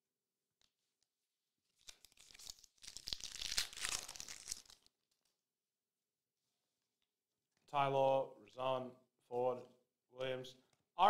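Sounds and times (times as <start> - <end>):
wrapper tearing and crinkling: 1.8 - 5.3.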